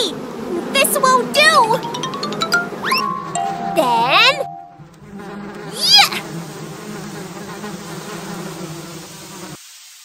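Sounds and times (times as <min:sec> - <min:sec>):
cartoon bees buzzing: 0:00.0 - 0:09.6.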